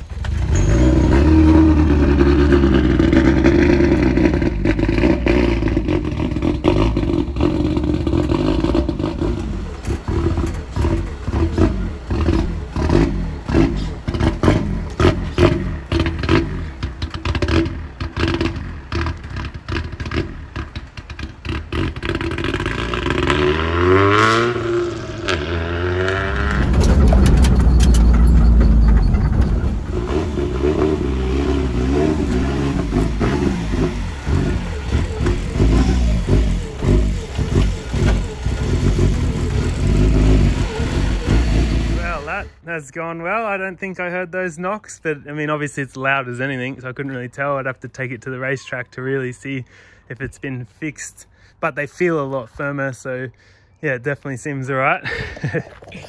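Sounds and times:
car engine with loud exhaust: 0.0 - 42.6
exhaust cracks: 0.0 - 42.6.

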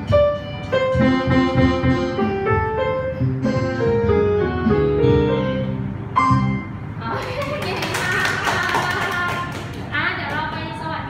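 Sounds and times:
keyboard music: 0.0 - 7.0.

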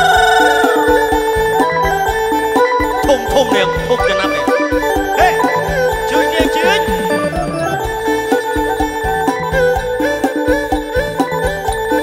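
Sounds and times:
steady drum beat: 0.0 - 12.0
wavering held lead note: 2.6 - 10.2.

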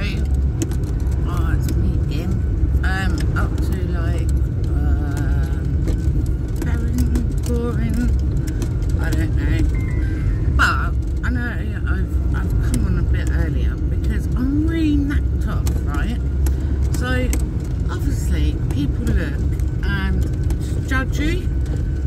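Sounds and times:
road rumble inside vehicle: 0.0 - 22.0.

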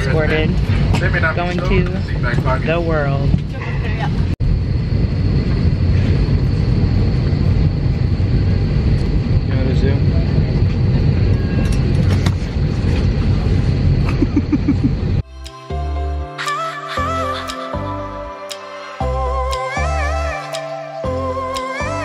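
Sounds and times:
airliner cabin rumble: 0.0 - 15.2.

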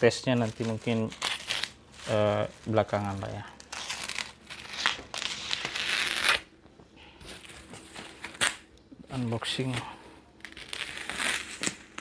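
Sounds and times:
plastic rustling and crackling: 0.0 - 6.3
plastic wrapping tearing: 0.0 - 6.5, 7.4 - 8.7, 10.4 - 12.0.

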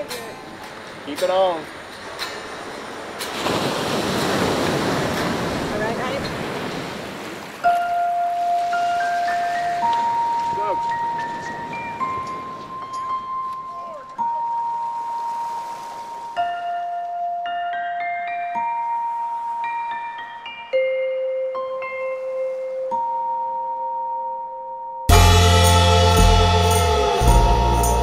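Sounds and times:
ocean surf on beach: 0.0 - 20.6.

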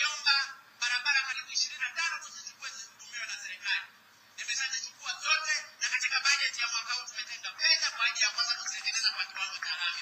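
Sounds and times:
man speaking through tinny speaker: 0.0 - 10.0.

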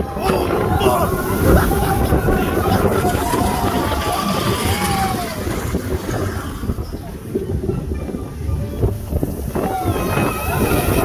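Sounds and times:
riders' voices: 0.0 - 11.0
roller coaster train rumbling on track: 0.0 - 11.0
wind buffeting microphone: 0.0 - 11.0.

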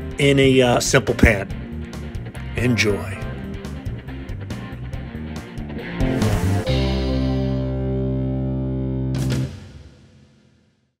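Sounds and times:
music long held chord: 6.0 - 9.2.

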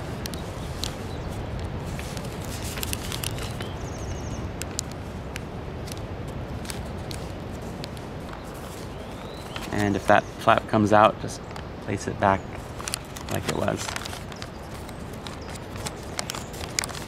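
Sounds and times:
paper crackling and creasing: 0.0 - 4.0, 5.8 - 10.6, 12.6 - 17.0.

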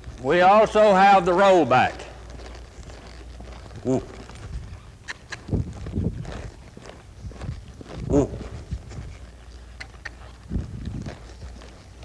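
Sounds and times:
horse hoofbeats on dirt: 0.0 - 12.0.

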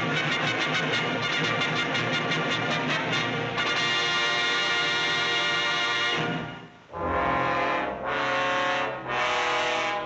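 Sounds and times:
orchestral brass chords: 0.0 - 10.0.

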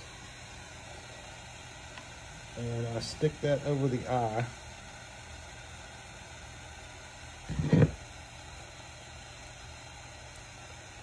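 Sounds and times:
propane torch hissing: 0.0 - 11.0.

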